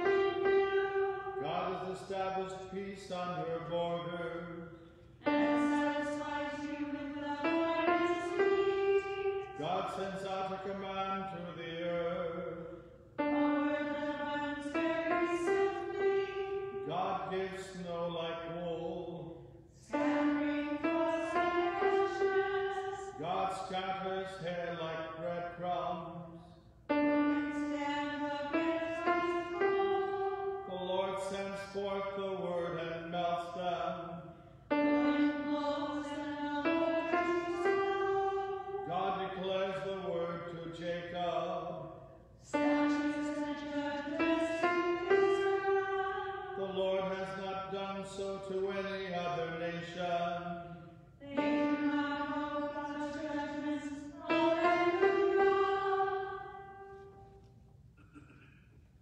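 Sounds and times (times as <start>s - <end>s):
man and woman singing: 0.0s - 4.6s, 5.2s - 26.3s, 27.0s - 41.8s, 42.4s - 57.0s.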